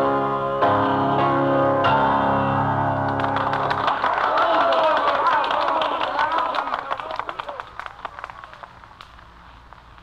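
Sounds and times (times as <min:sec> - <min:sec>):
piano chords ringing: 0:00.0 - 0:04.0.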